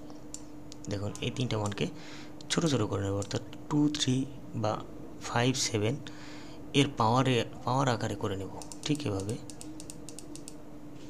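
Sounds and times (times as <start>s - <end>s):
computer keys clicking: 0.3s - 1.8s, 8.6s - 10.6s.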